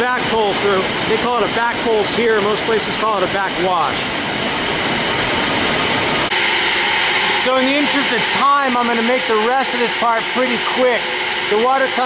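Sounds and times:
water overflowing into channel: 0.0 - 5.1.

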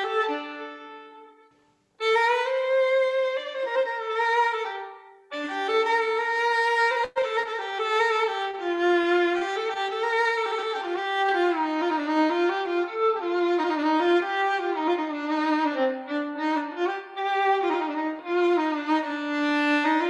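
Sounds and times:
solo violin melody: 0.0 - 20.0.

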